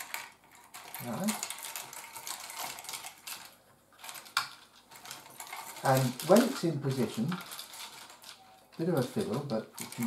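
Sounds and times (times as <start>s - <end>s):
wires and metal connectors rattling: 0.0s - 10.0s.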